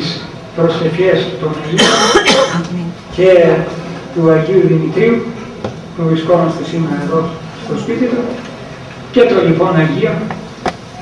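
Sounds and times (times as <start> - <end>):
man clearing throat: 1.8 - 2.7
man speaking: 3.1 - 5.4, 9.1 - 10.3.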